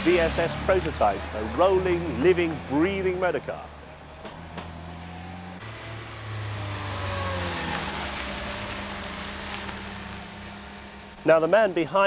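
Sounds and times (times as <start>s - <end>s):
car engine driving off: 0.0s - 11.9s.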